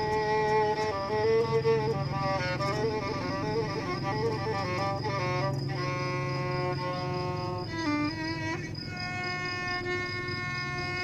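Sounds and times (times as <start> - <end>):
oud accompanying: 0.0 - 11.0
violin bowing long notes: 0.0 - 11.0.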